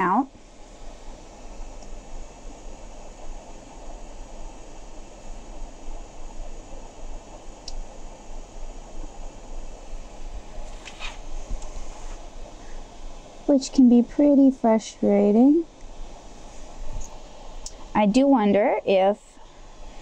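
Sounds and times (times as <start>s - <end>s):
background hiss: 0.0s - 20.0s
low mains hum: 0.0s - 20.0s.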